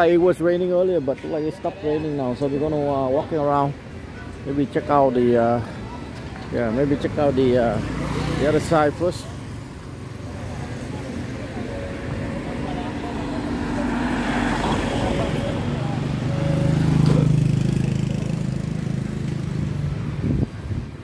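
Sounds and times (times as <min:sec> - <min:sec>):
vehicle engine passing: 0:06.8 - 0:20.9.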